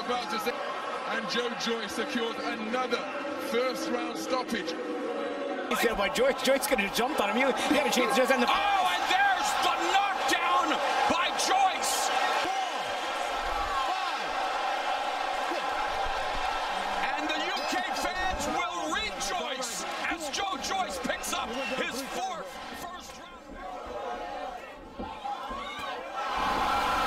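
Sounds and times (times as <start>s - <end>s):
crowd yelling: 0.0s - 27.0s.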